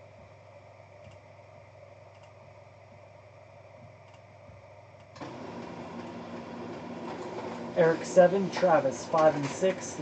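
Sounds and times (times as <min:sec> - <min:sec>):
printer mechanical hum: 0:00.0 - 0:10.0
faint clicks: 0:01.0 - 0:01.3, 0:02.1 - 0:02.4, 0:04.0 - 0:04.3.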